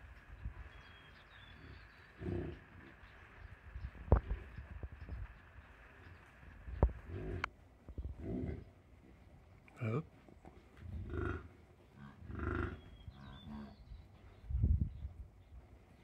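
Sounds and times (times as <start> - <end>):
bison grunting: 1.5 - 2.7, 7.0 - 7.5, 10.9 - 13.8.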